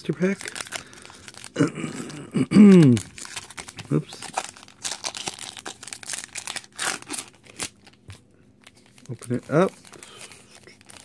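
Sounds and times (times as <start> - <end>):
foil wrapper ripping: 0.0 - 8.0, 8.6 - 11.0
foil wrapper crinkling: 0.0 - 11.0.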